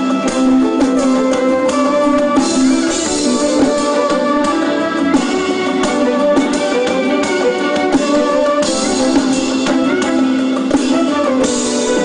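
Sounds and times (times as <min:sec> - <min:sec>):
live band through pa: 0:00.0 - 0:12.0.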